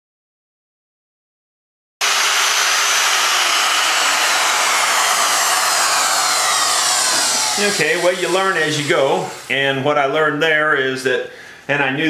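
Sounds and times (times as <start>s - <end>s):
electric router whining: 2.0s - 9.6s.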